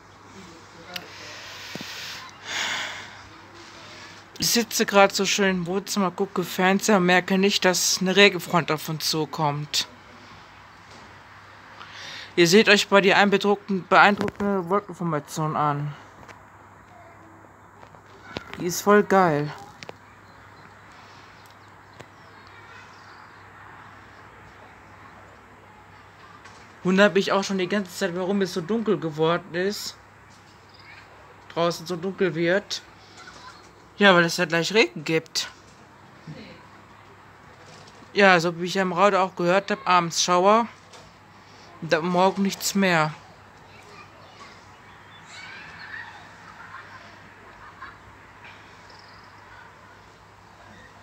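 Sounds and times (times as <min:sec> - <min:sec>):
steady background hiss: 0:00.0 - 0:19.6
short sniff close to microphone: 0:01.0 - 0:04.2
distant bird calls: 0:13.6 - 0:26.8, 0:29.9 - 0:32.1, 0:32.8 - 0:34.0, 0:38.8 - 0:51.0.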